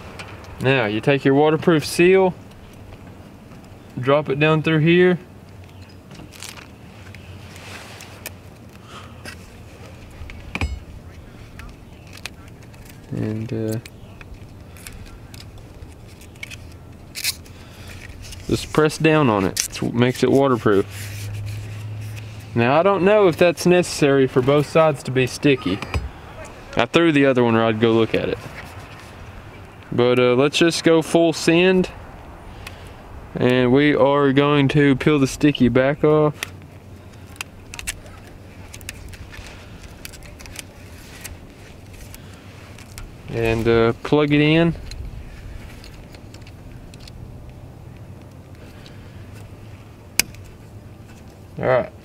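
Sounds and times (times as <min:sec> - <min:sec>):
steady low hum: 0:00.0 - 0:52.0
rustling: 0:05.5 - 0:22.6, 0:28.0 - 0:29.7, 0:36.3 - 0:51.6
plastic clicks and crackles: 0:11.5 - 0:18.4, 0:36.4 - 0:43.1, 0:45.7 - 0:49.5.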